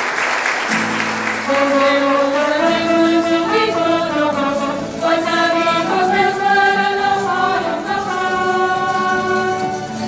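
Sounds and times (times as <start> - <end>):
musical accompaniment: 0.0 - 10.0
group singing: 1.5 - 10.0.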